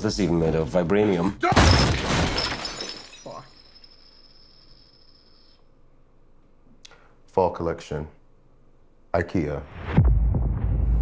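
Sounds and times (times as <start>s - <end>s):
faint high ringing tones: 2.6s - 5.8s.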